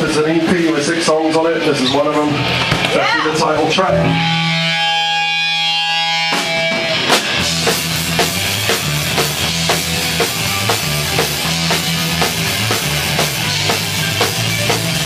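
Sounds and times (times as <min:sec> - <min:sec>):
punk band playing live: 0:00.0 - 0:15.0
ringing electric guitar chord: 0:03.8 - 0:08.7.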